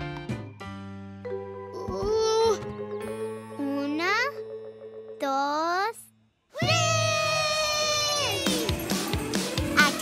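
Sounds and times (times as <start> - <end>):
cartoon child rising call: 6.6 - 8.6.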